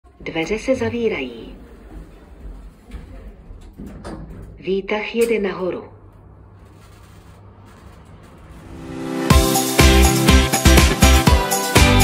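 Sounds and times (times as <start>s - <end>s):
lift rumbling: 0.1s - 9.2s.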